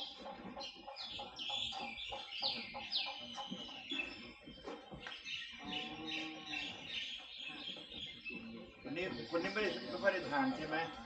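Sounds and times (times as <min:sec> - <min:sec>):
birds chirping: 0:00.0 - 0:11.0.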